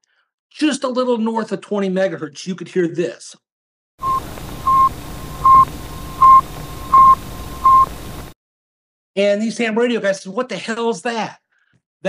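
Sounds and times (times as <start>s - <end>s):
short high radio beeps: 4.0s - 8.0s
static hiss: 4.0s - 8.4s.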